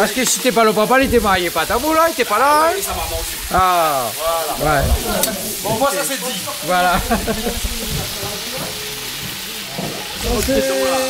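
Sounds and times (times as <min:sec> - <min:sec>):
food frying sizzle: 0:00.0 - 0:11.0
faint voices: 0:00.8 - 0:11.0.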